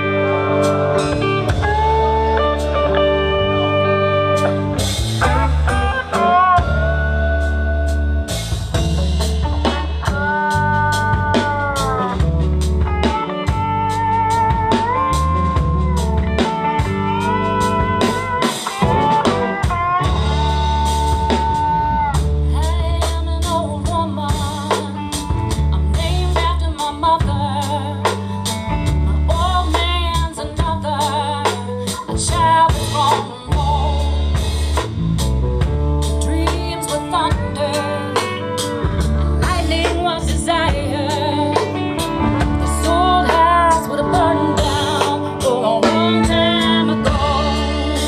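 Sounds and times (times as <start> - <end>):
person singing: 0.0 - 8.4, 9.6 - 12.2, 14.7 - 34.5, 36.2 - 48.0
blues band playing: 0.0 - 48.0
sliding lead melody: 0.0 - 48.0.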